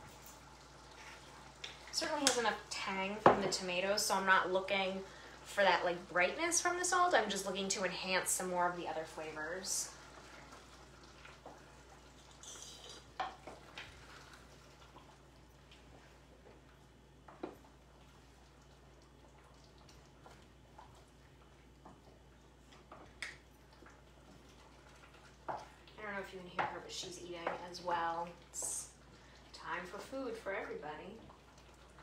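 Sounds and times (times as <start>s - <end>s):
low steady hum: 0.0s - 32.0s
wooden spoon stirring thick sauce: 13.0s - 30.5s.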